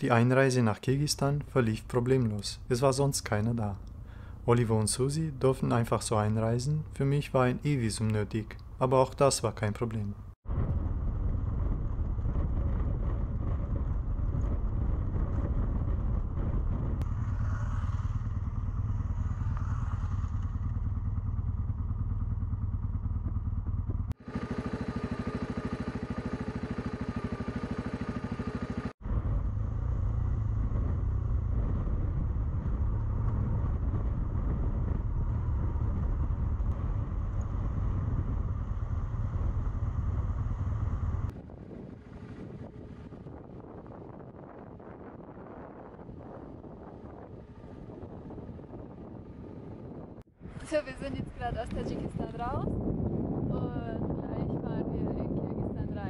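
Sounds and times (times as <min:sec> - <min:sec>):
wind: 0:00.0 - 0:56.0
motorcycle engine running: 0:10.4 - 0:56.0.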